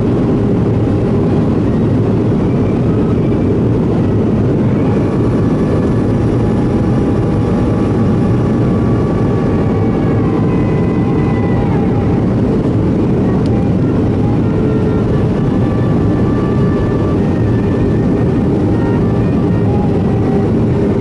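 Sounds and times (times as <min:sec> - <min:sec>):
faint engine whine: 0:00.0 - 0:21.0
roar of airflow and jet engines: 0:00.0 - 0:21.0.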